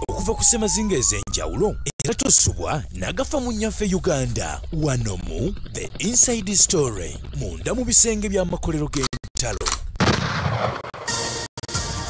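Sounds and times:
explosion blast: 0:10.0 - 0:11.1.

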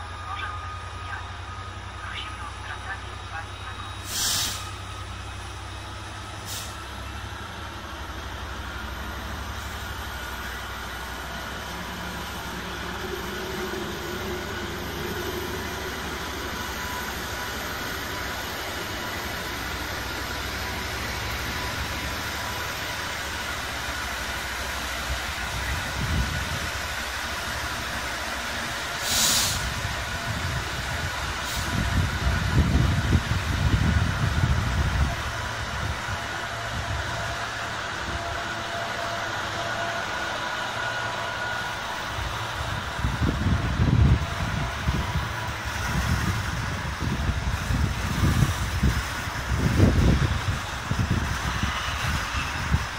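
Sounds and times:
diesel locomotive rumbling: 0:00.0 - 0:52.9
brief hiss: 0:04.0 - 0:04.8, 0:06.4 - 0:06.8, 0:29.0 - 0:29.8.

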